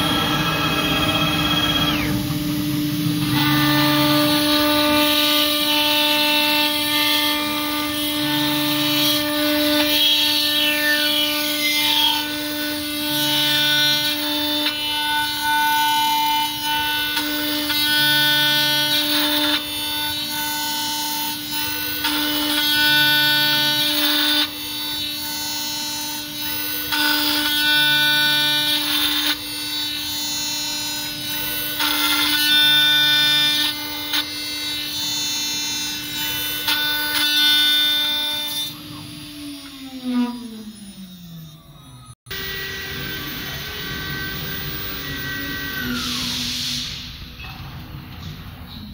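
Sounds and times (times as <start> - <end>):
spindle winding down whine: 0.0 - 3.6, 38.7 - 47.0
router spindle running: 0.0 - 29.2
end mill cutting metal plate: 0.0 - 48.9.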